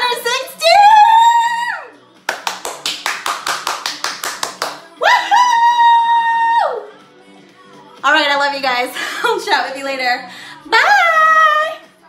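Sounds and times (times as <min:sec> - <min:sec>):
rapid hand clapping: 0:02.2 - 0:04.8.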